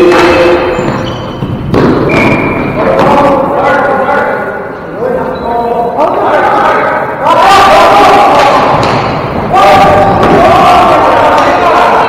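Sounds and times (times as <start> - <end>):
loud thud ringing in hall: 0.0 - 3.4, 8.1 - 12.0.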